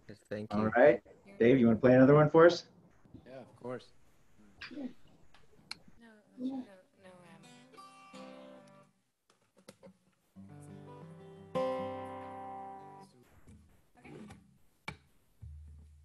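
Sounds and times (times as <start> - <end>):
acoustic guitar chords strummed: 10.6 - 13.0.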